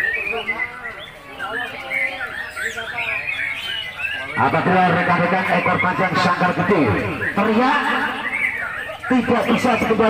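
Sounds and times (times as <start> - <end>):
murmur of crowd voices: 0.0 - 10.0
songbirds singing: 0.0 - 10.0.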